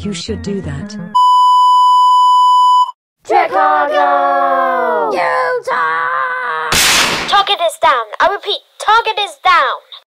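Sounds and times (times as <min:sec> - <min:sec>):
steady test tone beep: 0:01.2 - 0:03.0.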